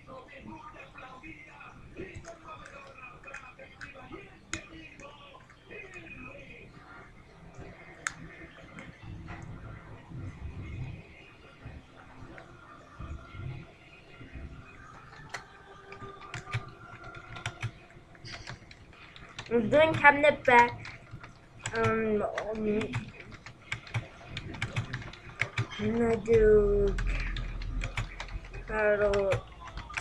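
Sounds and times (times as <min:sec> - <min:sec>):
keyboard typing clicks: 0:15.1 - 0:17.7, 0:20.8 - 0:30.0.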